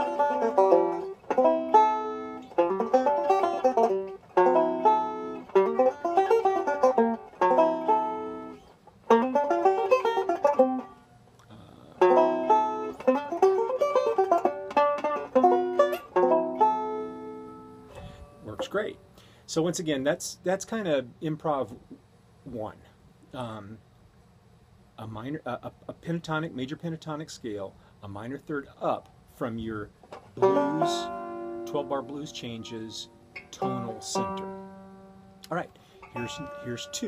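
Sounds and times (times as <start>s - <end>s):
banjo picking melodic phrases: 0.0s - 11.1s, 11.9s - 19.0s, 29.5s - 37.0s.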